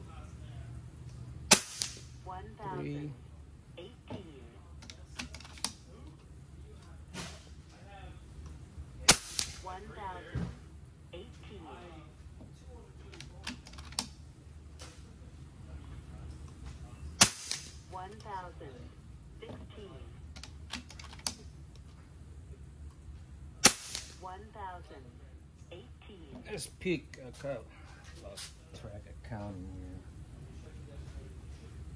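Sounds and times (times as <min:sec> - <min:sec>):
air rifle shots: 0:01.5 - 0:02.2, 0:09.0 - 0:09.6, 0:17.2 - 0:17.8, 0:23.6 - 0:24.2.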